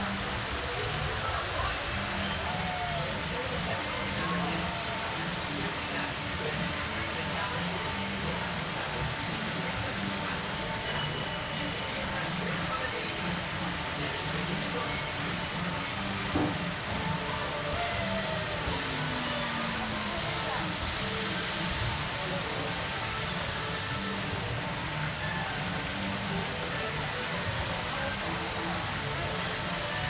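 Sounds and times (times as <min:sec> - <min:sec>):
crowd voices: 0:00.0 - 0:30.0
faint background music: 0:00.0 - 0:30.0
fountain water splashing: 0:00.0 - 0:30.0
knock: 0:16.4 - 0:16.6.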